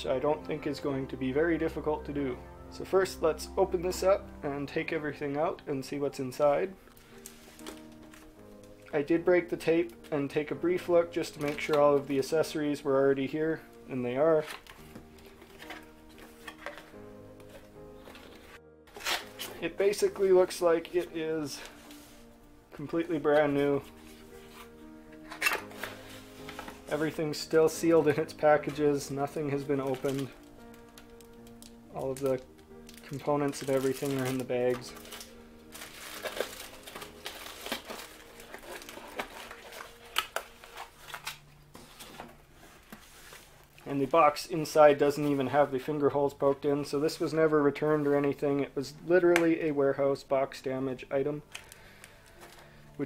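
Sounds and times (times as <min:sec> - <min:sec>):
soft background music: 0:00.0 - 0:53.0
cardboard packaging rustling: 0:06.3 - 0:12.5, 0:14.1 - 0:22.3, 0:22.9 - 0:45.7, 0:51.5 - 0:52.8
plastic bags crinkling: 0:06.9 - 0:08.8, 0:29.0 - 0:42.2, 0:51.5 - 0:52.8.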